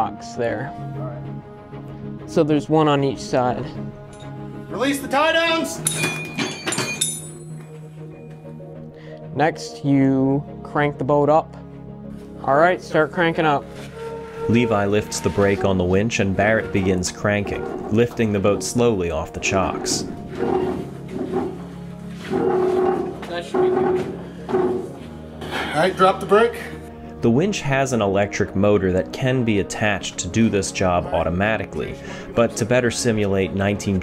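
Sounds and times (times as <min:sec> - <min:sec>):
background music: 0:00.0 - 0:34.0
metal chain and hook clinking: 0:04.1 - 0:04.4, 0:05.8 - 0:07.8
hand-cranked winch creaking: 0:13.8 - 0:18.6, 0:19.4 - 0:24.9.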